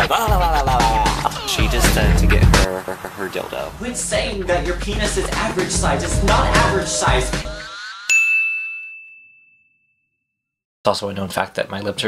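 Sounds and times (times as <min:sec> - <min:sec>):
man speaking: 0:00.0 - 0:06.3
electronic ding: 0:08.1 - 0:09.9.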